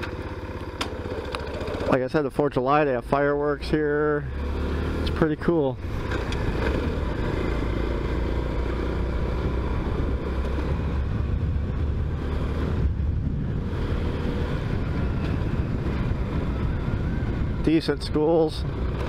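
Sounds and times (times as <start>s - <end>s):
small motorcycle engine running: 0.0s - 2.4s, 4.2s - 17.7s, 18.3s - 19.0s
wind rumbling on microphone: 8.4s - 19.0s.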